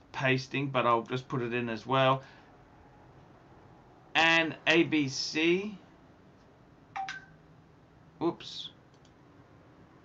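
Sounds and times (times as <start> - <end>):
two-note electronic beep: 7.0 - 7.4.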